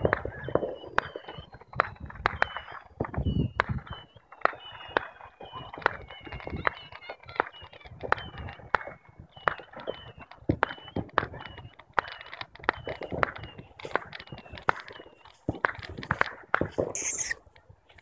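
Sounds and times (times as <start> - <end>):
distant fireworks cracking: 0.0 - 18.0.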